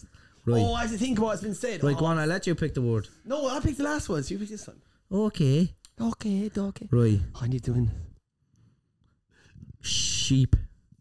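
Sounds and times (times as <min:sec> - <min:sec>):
person speaking: 0:00.4 - 0:08.1.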